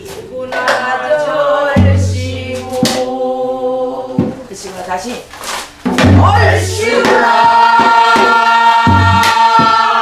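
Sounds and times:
barrel drum strokes: 5.8 - 10.0.

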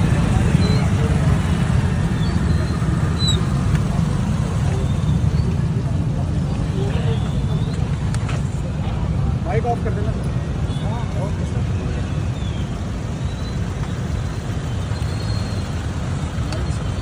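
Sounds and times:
traffic engines rumbling: 0.0 - 17.0.

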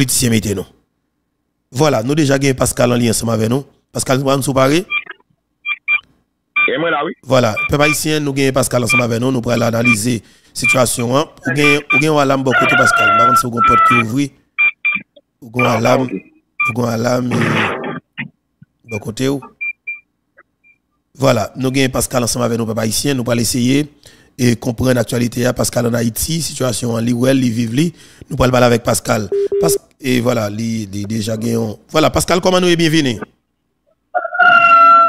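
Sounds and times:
man speaking: 1.8 - 5.0, 6.6 - 14.4, 15.4 - 17.7, 18.8 - 19.6, 21.2 - 33.3
short electronic beeps: 4.8 - 6.0, 6.6 - 6.8, 7.5 - 8.1, 8.8 - 9.2, 14.6 - 16.8, 18.9 - 20.8, 29.3 - 29.8
rooster crowing: 12.4 - 14.1, 34.1 - 35.0.

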